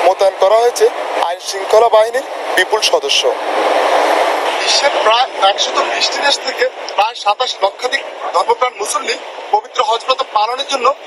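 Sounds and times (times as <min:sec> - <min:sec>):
outdoor street noise: 0:00.0 - 0:11.0
voices speaking: 0:00.0 - 0:11.0.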